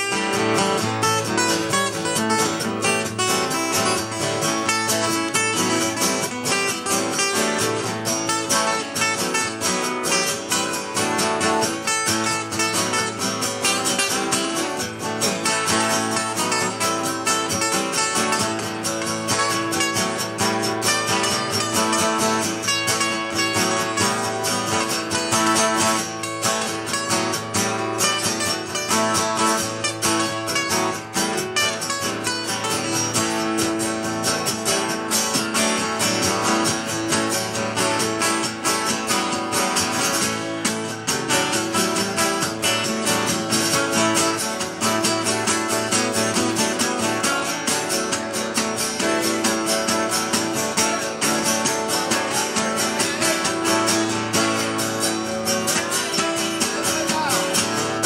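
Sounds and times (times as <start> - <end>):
acoustic guitars strummed: 0.0 - 58.0.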